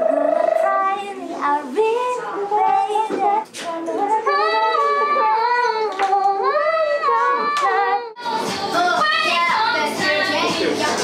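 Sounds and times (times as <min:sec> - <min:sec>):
women singing wailing melody: 0:00.0 - 0:10.4.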